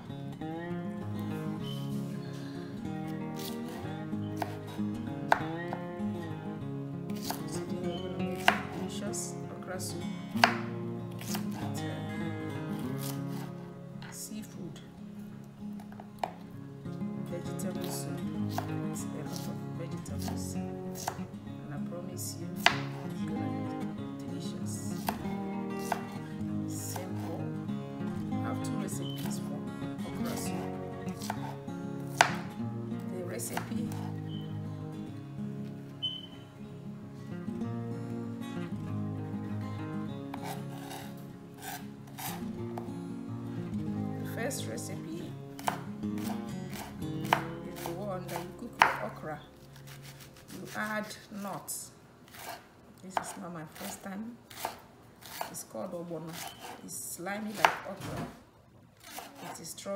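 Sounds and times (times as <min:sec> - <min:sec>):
background music: 0:00.0 - 0:51.2.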